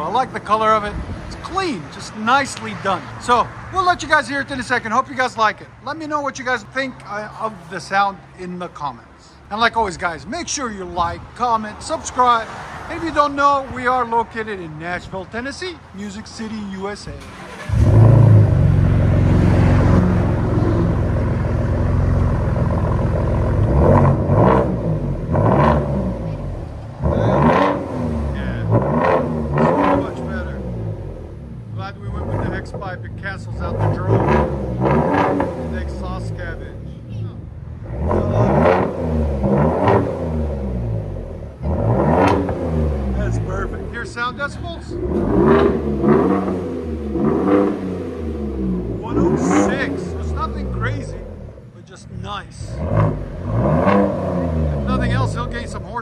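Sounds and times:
truck engine idling and revving: 0:00.0 - 0:56.0.

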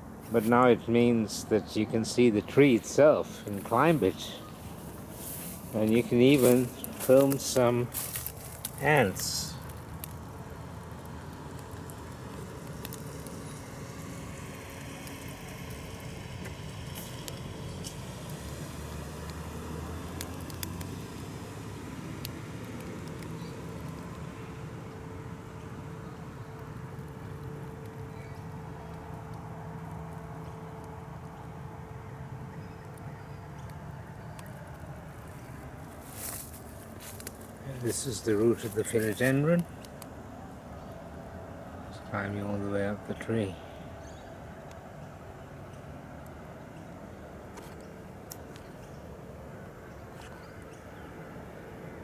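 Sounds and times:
low outdoor rumble: 0:00.0 - 0:52.0.

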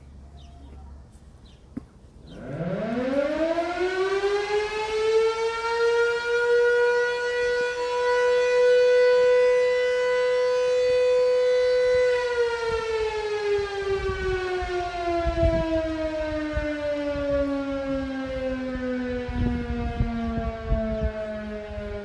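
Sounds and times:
fire siren wailing: 0:02.3 - 0:22.0.

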